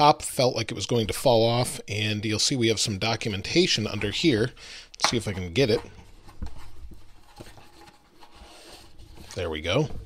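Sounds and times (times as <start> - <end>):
cardboard rubbing and scraping: 6.1 - 9.8.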